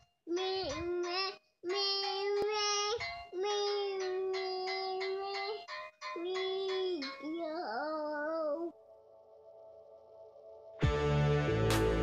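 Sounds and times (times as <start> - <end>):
children's tune sung in held notes: 0.0 - 9.0.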